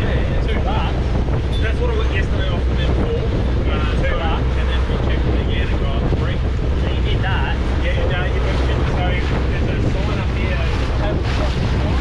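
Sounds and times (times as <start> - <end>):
outboard motor running: 0.0 - 12.0
water rushing past hull: 0.0 - 12.0
wind buffeting microphone: 0.0 - 12.0.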